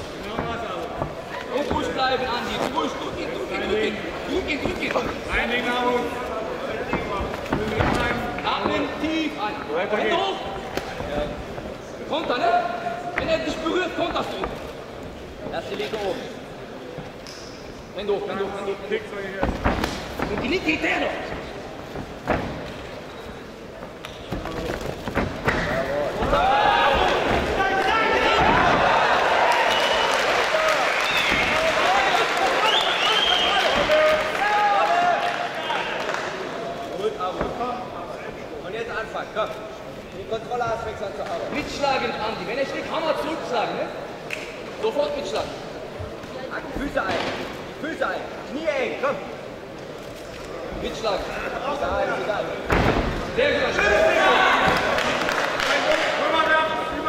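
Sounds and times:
crowd shouting and cheering: 0:25.6 - 0:36.6, 0:53.4 - 0:57.0.

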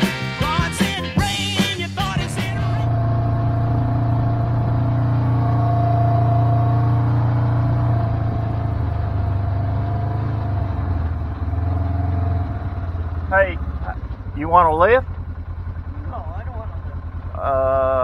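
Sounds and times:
utility vehicle engine running: 0:00.4 - 0:18.0.

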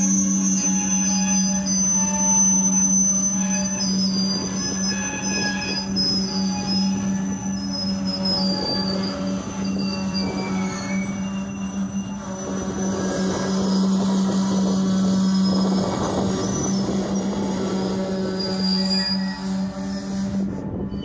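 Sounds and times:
train wheels squealing on rail: 0:00.0 - 0:21.0.

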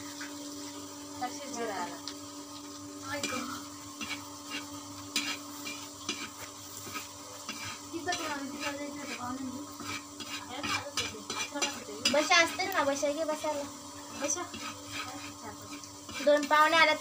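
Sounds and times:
food sizzling in hot oil: 0:00.0 - 0:17.0
spatula scraping a pan: 0:03.2 - 0:17.0.

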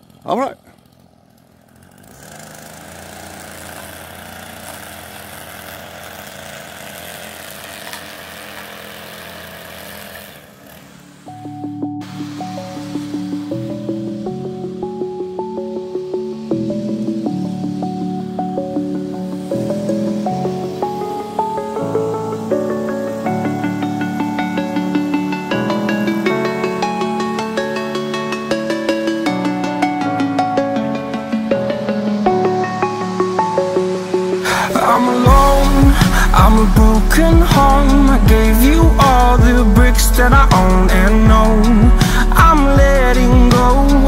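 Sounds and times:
backpack leaf blower running: 0:00.0 - 0:44.0
background music with short notes: 0:11.3 - 0:44.0.

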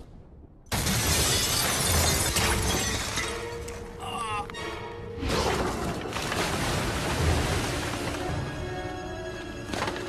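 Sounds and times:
glass shattering crash: 0:00.7 - 0:03.5.

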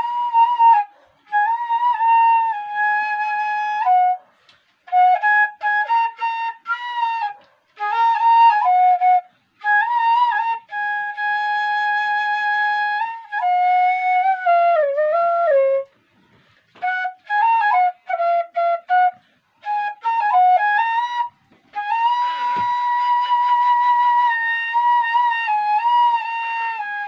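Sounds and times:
bamboo flute melody: 0:00.0 - 0:27.0.

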